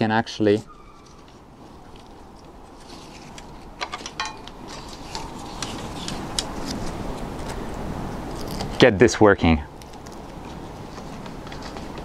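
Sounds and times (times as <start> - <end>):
outdoor background hiss: 0.0 - 12.0
clicks and rustling of ties: 1.0 - 7.6, 9.8 - 12.0.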